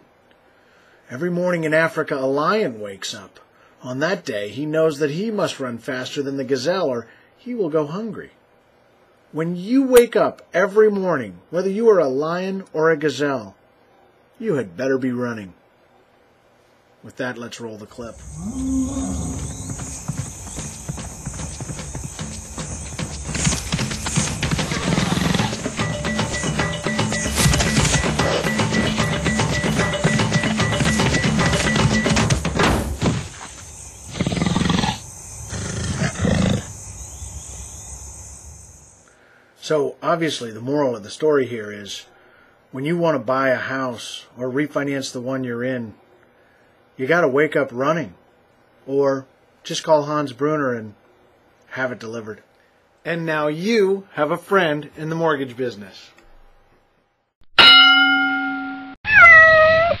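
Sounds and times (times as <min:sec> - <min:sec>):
lion calling: 0:18.0 - 0:27.2, 0:33.4 - 0:36.8
rhythmic soundtrack music: 0:19.7 - 0:32.7
bell-like ding: 0:57.6 - 0:59.0
cat meowing: 0:59.0 - 1:00.0.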